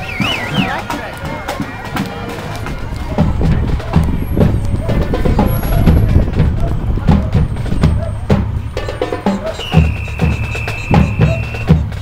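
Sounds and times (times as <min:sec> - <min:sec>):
people talking: 0:00.0 - 0:11.9
parade music with drum beats: 0:00.0 - 0:12.0.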